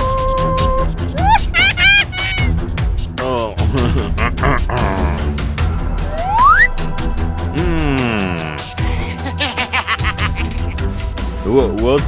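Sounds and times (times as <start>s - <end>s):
background music: 0.0s - 12.0s
high mewing animal cry: 1.2s - 2.6s.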